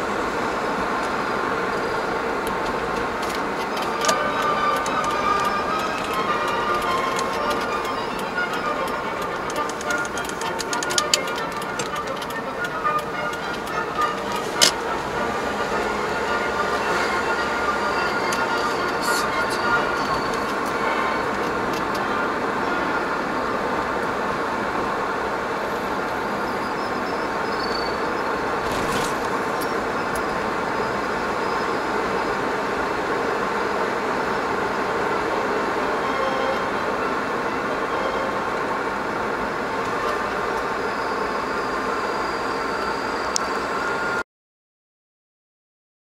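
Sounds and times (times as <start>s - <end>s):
car engine and tyre noise: 0.0s - 44.2s.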